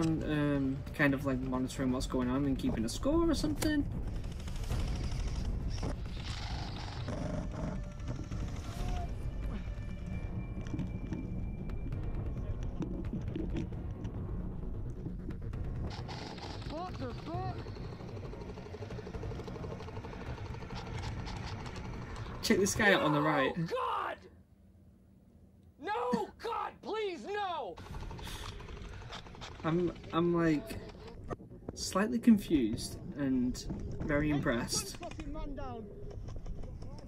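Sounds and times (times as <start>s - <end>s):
music: 0.0s - 23.5s.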